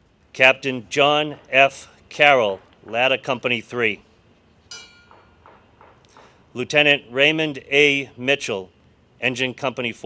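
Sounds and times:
small bell ringing: 0:04.7 - 0:05.4.

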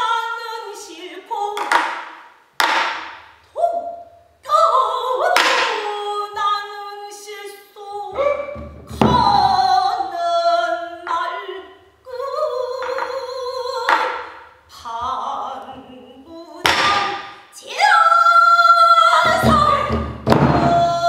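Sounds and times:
woman singing held bending notes: 0:03.5 - 0:21.0.

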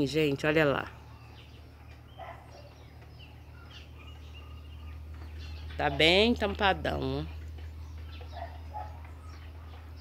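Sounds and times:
faint bird calls: 0:00.9 - 0:06.0.

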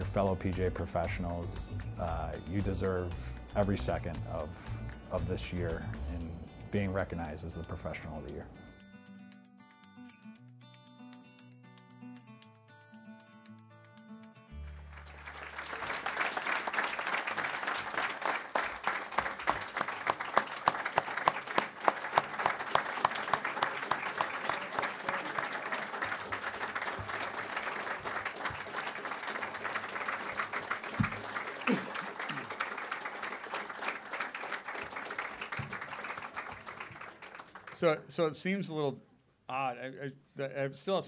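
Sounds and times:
music: 0:00.0 - 0:36.8
crowd applauding: 0:14.5 - 0:38.0.

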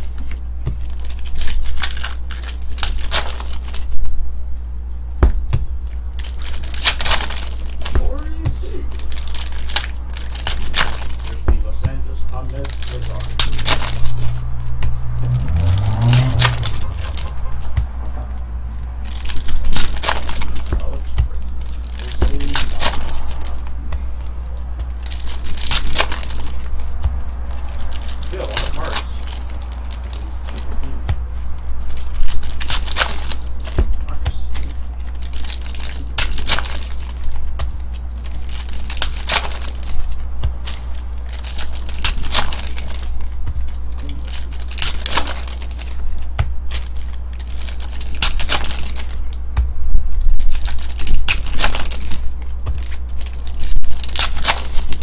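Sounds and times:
foil wrappers tearing and crinkling: 0:00.0 - 0:04.0, 0:05.8 - 0:14.5, 0:15.1 - 0:17.7, 0:18.7 - 0:23.8, 0:24.8 - 0:55.0
steady low hum: 0:00.0 - 0:55.0
cards shuffled: 0:05.8 - 0:18.0, 0:18.8 - 0:49.4, 0:50.1 - 0:55.0.

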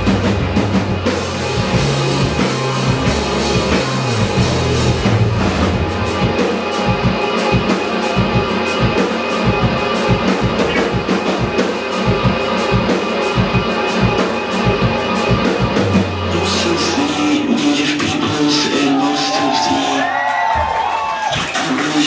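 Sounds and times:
electric guitars: 0:00.0 - 0:17.6
drum kit beat: 0:00.0 - 0:22.0.

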